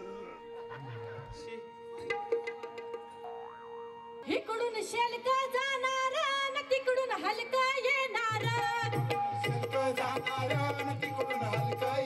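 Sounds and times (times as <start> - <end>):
held steady note: 0.0 - 5.6.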